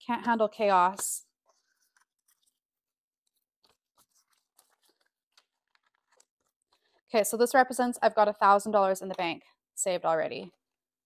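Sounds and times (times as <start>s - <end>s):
banknotes rustling: 1.5s - 6.8s.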